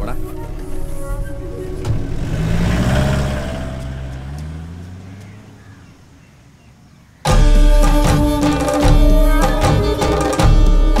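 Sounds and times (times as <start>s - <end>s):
vehicle engine pulling away: 0.2s - 6.6s.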